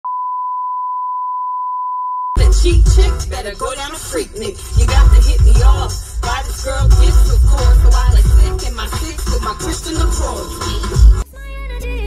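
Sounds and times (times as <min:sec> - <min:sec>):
steady test tone beep: 0:00.0 - 0:02.4.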